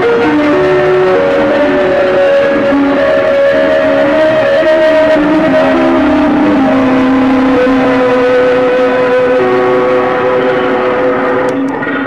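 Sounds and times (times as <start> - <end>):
noise music drone with hiss: 0.0 - 12.0.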